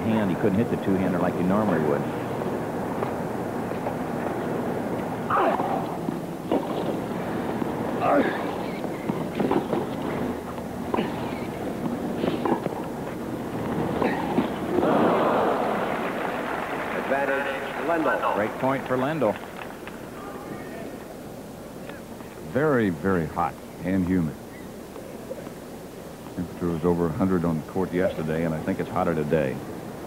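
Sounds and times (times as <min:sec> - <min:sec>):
crowd noise: 0:00.0 - 0:23.0
crowd cheering and applauding: 0:14.7 - 0:20.9.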